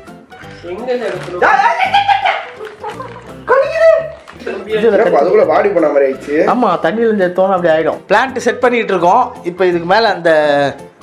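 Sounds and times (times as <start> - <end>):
background music: 0.0 - 11.0
dog yelping: 1.4 - 4.2.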